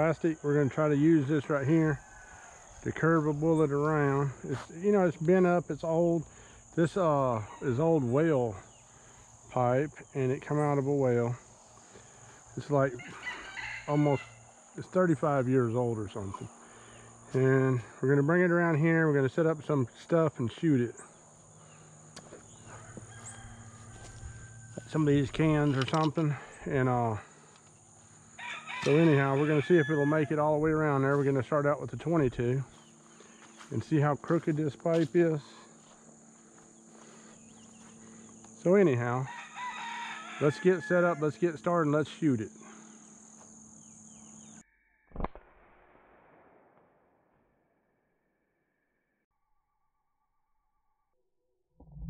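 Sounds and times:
high insect drone: 0.0s - 44.6s
chickens calling: 10.5s - 17.0s, 20.6s - 35.6s, 36.9s - 43.0s
rifle shot with echo: 45.2s - 47.3s.

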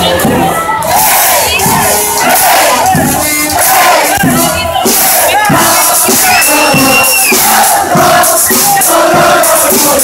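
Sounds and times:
brass band playing: 0.0s - 10.0s
crowd singing and shouting: 0.0s - 10.0s
low drum beats: 0.0s - 10.0s.

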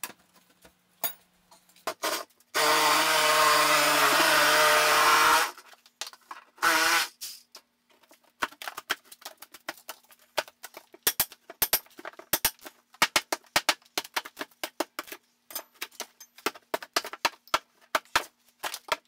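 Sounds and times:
cordless drill running: 2.6s - 5.6s.

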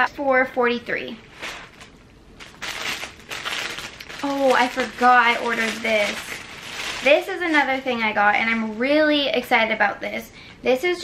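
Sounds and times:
clothes and packaging crinkling: 1.2s - 9.4s.

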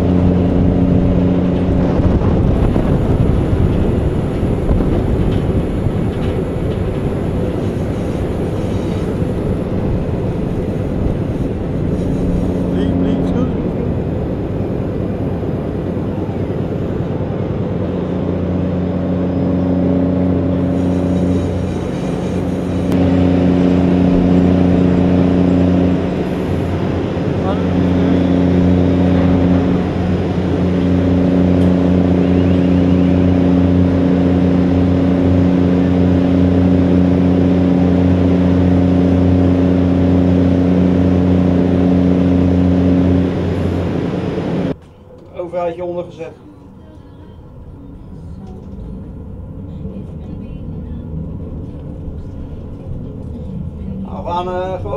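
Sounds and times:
heavy machinery engine drone: 0.0s - 54.9s.

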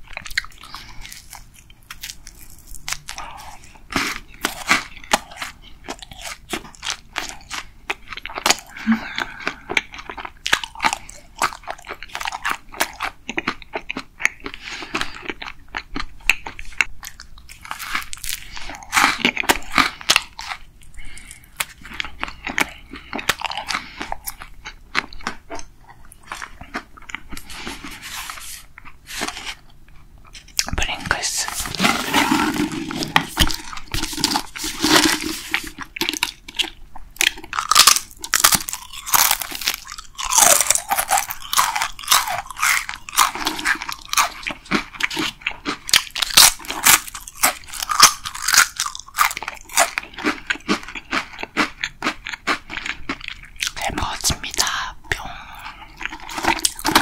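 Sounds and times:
loud crunching of crisps: 0.0s - 29.7s, 30.4s - 57.0s
soft chewing: 0.0s - 57.0s.

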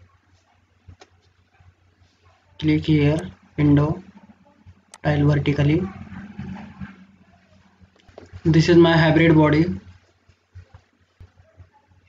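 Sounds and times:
faint low hum: 0.0s - 12.0s
soft irregular sounds: 0.0s - 12.0s.

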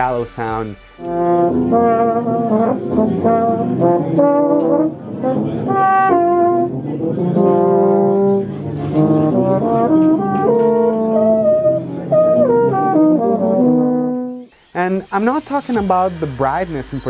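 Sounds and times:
solo euphonium melody: 0.0s - 14.5s.

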